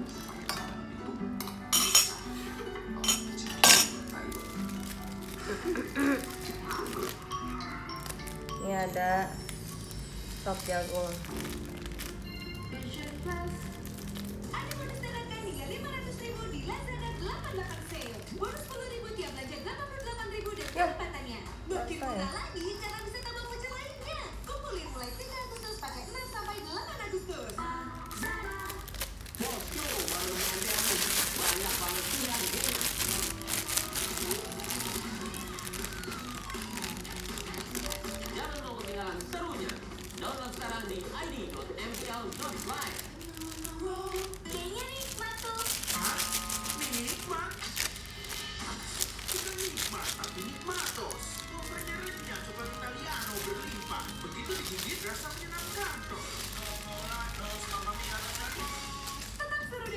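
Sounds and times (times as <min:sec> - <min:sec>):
music with singing: 0:00.0 - 0:16.6, 0:26.6 - 0:59.9
crinkling handling noise: 0:01.4 - 0:21.2, 0:21.8 - 0:59.9.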